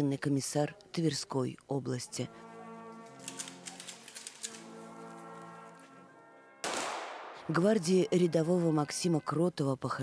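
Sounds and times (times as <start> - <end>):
brass band playing slow piece: 2.2 - 7.5.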